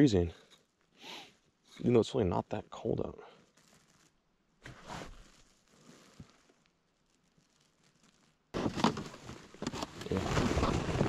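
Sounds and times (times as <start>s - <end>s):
jacket fabric rustling on microphone: 3.4s - 11.0s.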